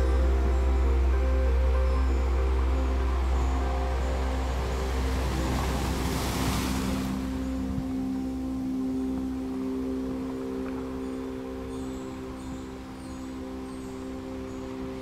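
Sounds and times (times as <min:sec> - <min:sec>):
deep low drone: 0:00.0 - 0:15.0
long held synth tones: 0:00.0 - 0:15.0
wave-like whoosh of noise: 0:00.0 - 0:15.0.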